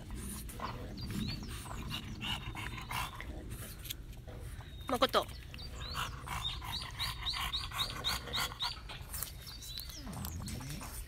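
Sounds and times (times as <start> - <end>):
dogs panting: 0.0 - 11.0.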